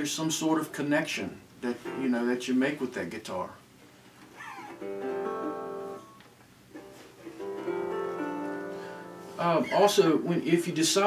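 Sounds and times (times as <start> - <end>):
resonator guitar chords strummed: 4.6 - 6.2, 6.8 - 9.7.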